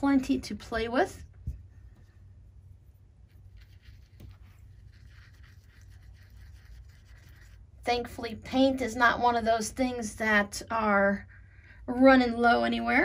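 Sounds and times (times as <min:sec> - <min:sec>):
paintbrush rubbing on palette: 0:01.8 - 0:07.8.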